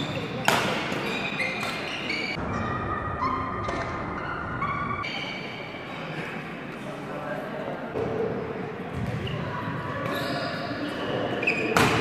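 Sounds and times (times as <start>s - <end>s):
shoes squeaking on hall floor: 0.0s - 2.4s, 3.2s - 6.3s, 9.0s - 12.0s
sports hall background noise: 0.0s - 12.0s.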